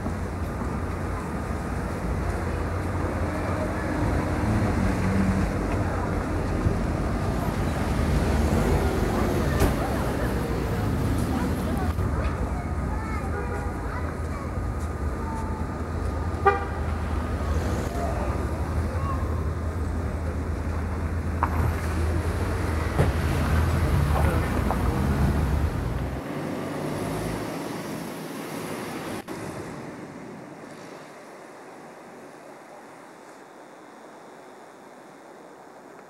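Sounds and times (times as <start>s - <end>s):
city street traffic rumble: 0.0s - 36.0s.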